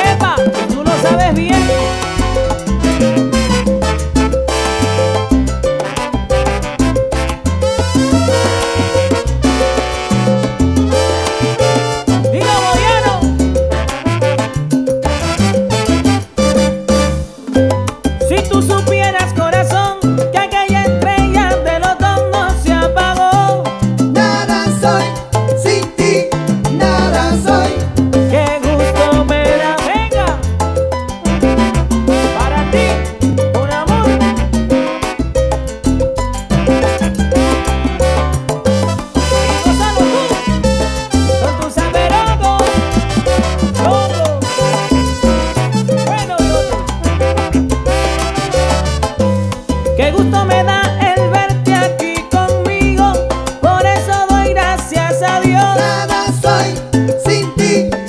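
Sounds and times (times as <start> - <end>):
stepping bass: 0.0 - 18.4, 30.2 - 51.7
congas: 0.0 - 58.0
piano: 0.0 - 58.0
salsa band playing: 0.0 - 58.0
trumpet-led brass line: 0.4 - 17.5, 28.8 - 30.4, 31.3 - 35.7, 36.5 - 49.6
guiro scraping: 0.6 - 18.0, 34.3 - 50.0.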